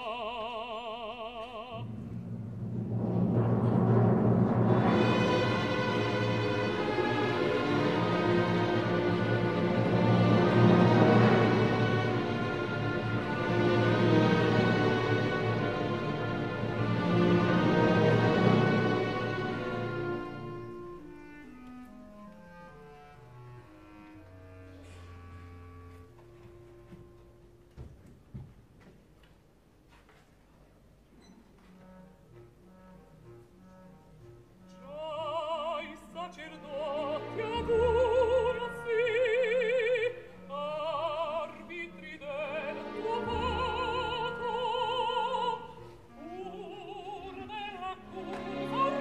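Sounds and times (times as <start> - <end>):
orchestral timpani roll and low strings: 1.7 - 21.4, 36.2 - 40.1.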